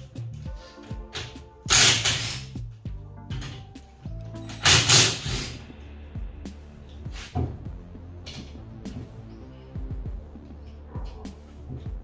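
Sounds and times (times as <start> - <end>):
background music with steady beat: 0.0 - 12.0
impact wrench burst: 1.7 - 2.5, 4.6 - 5.6.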